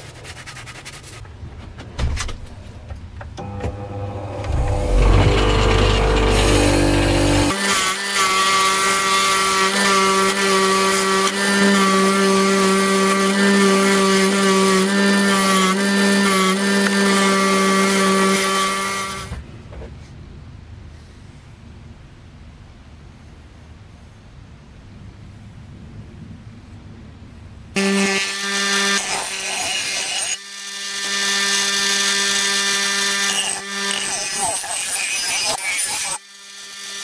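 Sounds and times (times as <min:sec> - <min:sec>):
bench grinder wire wheel running: 0:04.1 - 0:07.9.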